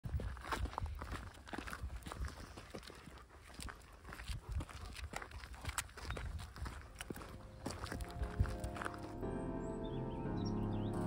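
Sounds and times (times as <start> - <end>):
footsteps crunching on gravel: 0.0 - 9.3.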